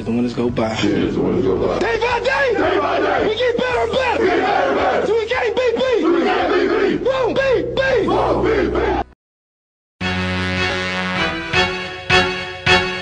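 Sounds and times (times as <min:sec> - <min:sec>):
team shouting a chant: 0:01.8 - 0:09.2.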